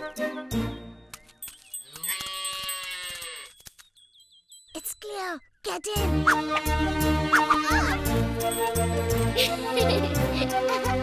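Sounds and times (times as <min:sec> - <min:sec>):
calf bleating: 0:01.9 - 0:03.6.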